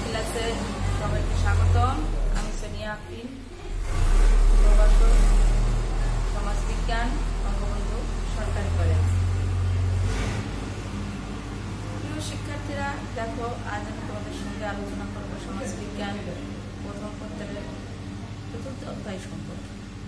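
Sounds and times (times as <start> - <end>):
woman speaking: 0.0 - 3.8, 4.4 - 9.3, 12.0 - 19.9.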